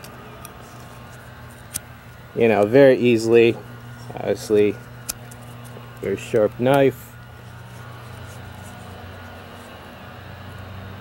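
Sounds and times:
knife and cord clicks: 0.0 - 1.9, 5.0 - 6.8
distant leaf blower drone: 0.0 - 11.0.

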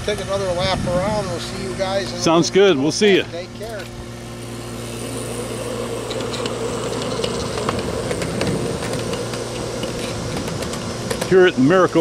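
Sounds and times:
model locomotive humming: 0.0 - 12.0.

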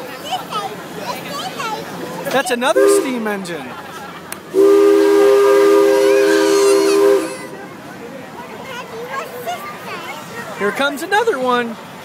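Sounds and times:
loud horn chord: 4.6 - 7.6.

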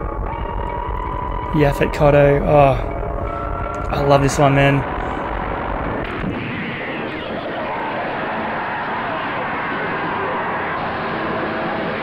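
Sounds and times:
horror trailer soundtrack: 0.0 - 12.0.

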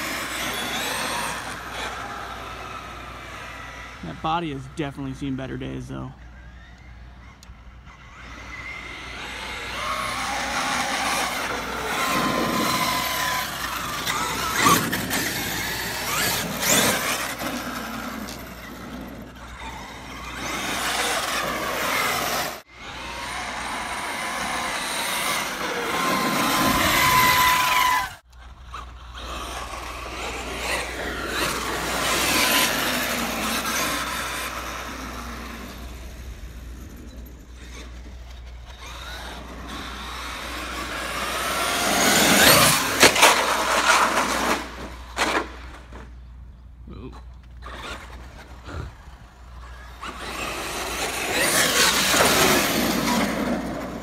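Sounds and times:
drivetrain and tyre noise: 0.0 - 54.0
electric motor and gear whine: 0.0 - 54.0.

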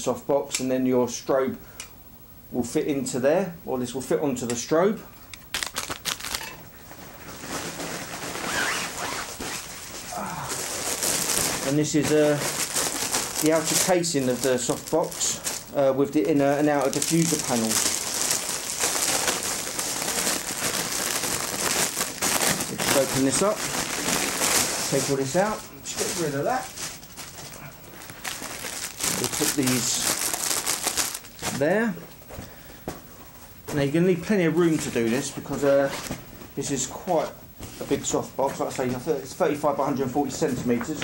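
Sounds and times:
nylon fabric rustling and sliding: 7.0 - 15.2, 17.0 - 27.1.

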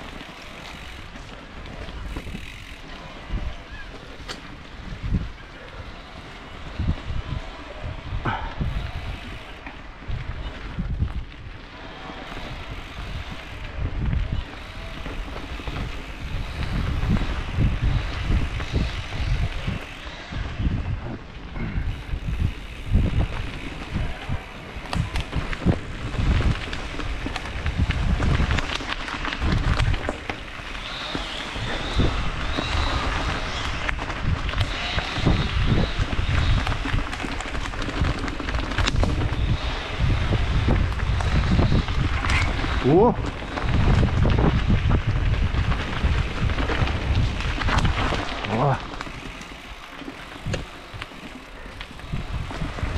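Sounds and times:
bike knocks and rattles: 0.0 - 2.8
tyres rolling on gravel: 0.0 - 52.9
wind buffeting microphone: 0.0 - 52.9.

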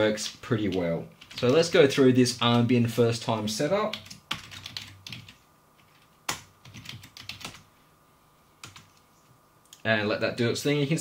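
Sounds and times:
computer keyboard typing: 0.6 - 1.8, 3.9 - 7.6, 8.6 - 9.0.

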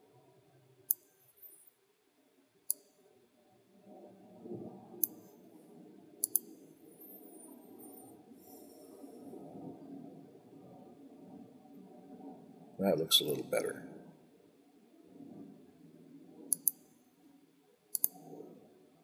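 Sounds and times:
faint low hum: 0.0 - 19.0
computer mouse clicks: 2.7 - 3.0, 5.0 - 5.4, 6.2 - 8.6, 16.5 - 16.9, 17.9 - 18.4.

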